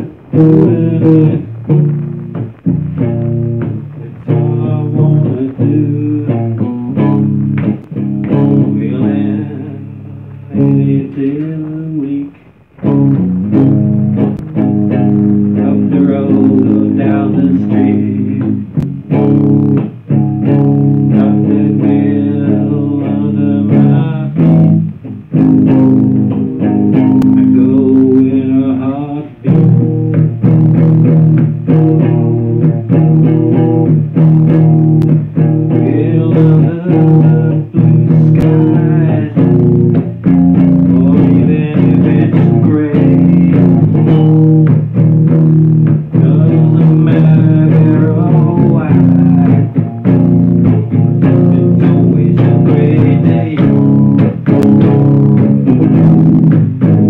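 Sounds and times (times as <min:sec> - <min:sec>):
electric guitar strumming rock chords: 0:00.0 - 0:57.0.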